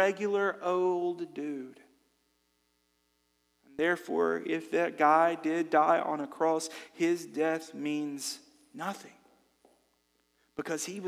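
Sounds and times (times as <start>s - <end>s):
man speaking: 0.0s - 1.9s, 3.7s - 9.2s, 10.6s - 11.0s
faint electrical hum: 0.0s - 11.0s.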